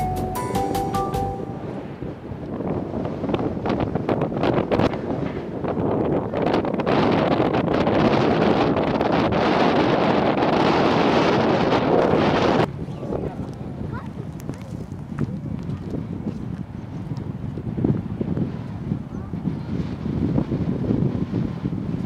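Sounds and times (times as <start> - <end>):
wind buffeting microphone: 0.8 - 22.0.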